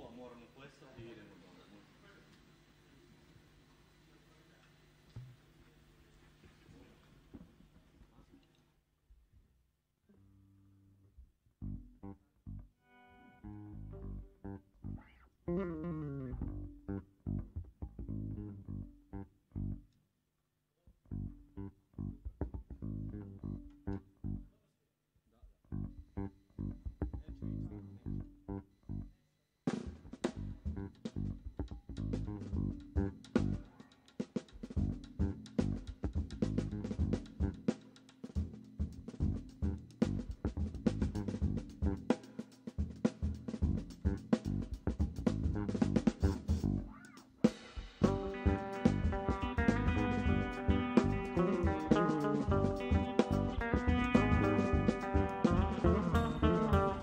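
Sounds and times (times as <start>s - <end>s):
electric bass: 10.3s - 12.8s, 13.4s - 19.9s, 20.9s - 24.6s, 25.6s - 29.2s, 30.1s - 33.7s, 34.7s - 37.7s, 38.4s - 42.1s, 42.8s - 47.0s, 48.0s - 57.0s
electric guitar: 12.9s - 18.6s, 48.0s - 57.0s
drum kit with cymbals: 29.7s - 57.0s.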